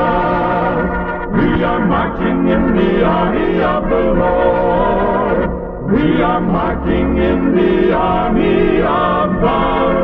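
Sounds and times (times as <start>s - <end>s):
gospel choir singing in harmony: 0.0s - 10.0s.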